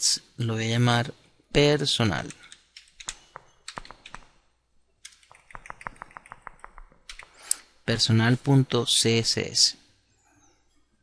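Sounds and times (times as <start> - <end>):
computer keyboard typing: 2.5 - 4.3, 5.0 - 7.6.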